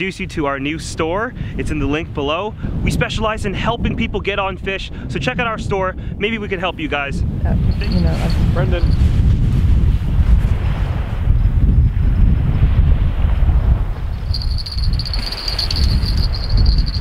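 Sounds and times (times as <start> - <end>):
wind buffeting microphone: 0.0 - 17.0
high-pitched ringing tone: 7.7 - 9.0, 14.3 - 17.0.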